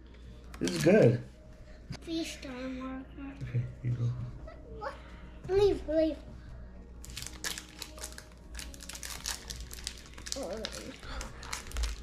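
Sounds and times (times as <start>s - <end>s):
cards and packaging crinkling: 0.4s - 1.2s, 7.0s - 12.0s.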